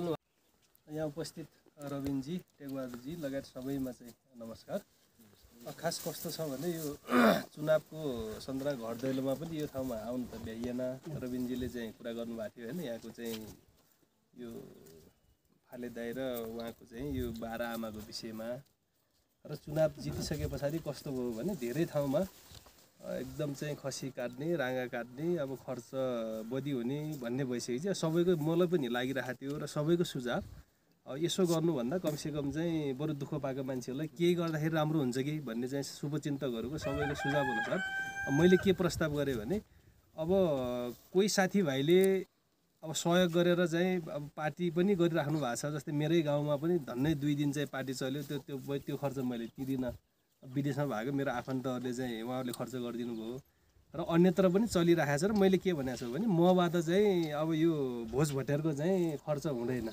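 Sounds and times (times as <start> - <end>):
man speaking: 0.0 - 0.2, 0.9 - 13.6, 14.4 - 15.0, 15.7 - 18.7, 19.4 - 22.4, 23.0 - 30.5, 31.1 - 39.6, 40.2 - 53.4, 54.0 - 59.9
man talking: 0.0 - 0.2, 0.8 - 13.6, 14.4 - 18.7, 19.4 - 22.4, 23.0 - 59.9
rooster crowing: 36.8 - 38.9.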